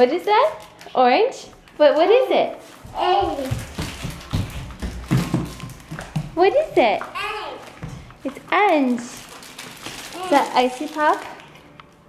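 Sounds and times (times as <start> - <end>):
footsteps on hard floor: 2.4 - 8.6.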